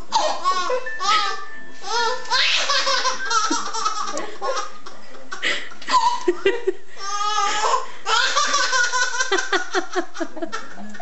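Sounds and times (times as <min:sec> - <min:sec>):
baby laughing: 0:00.0 - 0:10.9.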